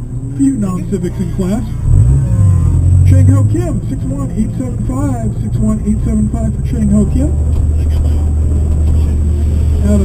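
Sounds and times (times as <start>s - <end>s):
car engine at low revs: 0.0s - 10.0s.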